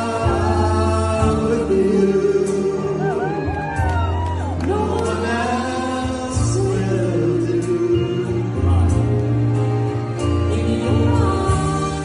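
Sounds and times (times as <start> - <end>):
two men singing duet: 0.0 - 9.6, 10.2 - 12.0.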